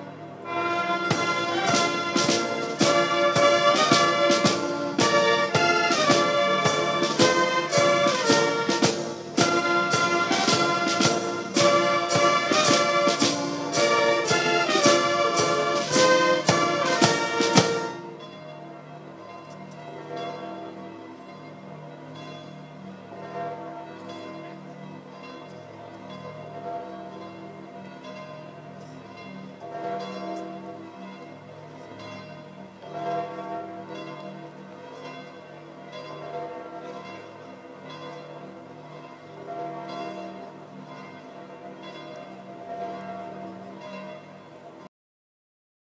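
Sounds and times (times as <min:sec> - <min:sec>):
church bells pealing: 0:00.0 - 0:44.9
brass band playing: 0:00.4 - 0:18.2.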